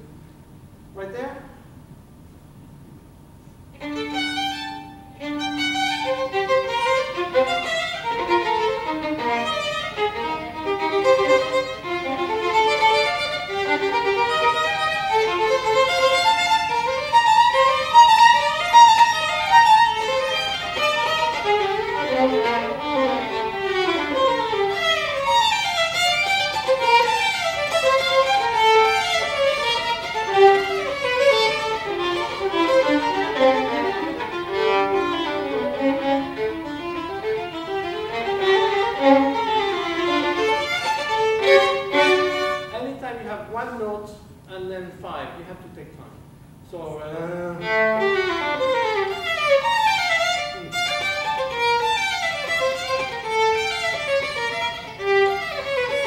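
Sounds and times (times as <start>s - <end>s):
two violins playing: 3.8s - 43.2s, 47.3s - 56.0s.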